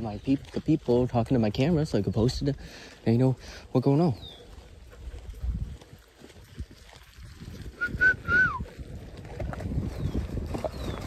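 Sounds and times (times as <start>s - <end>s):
footsteps on gravel: 0.0s - 11.0s
person whistling short notes: 7.8s - 8.6s.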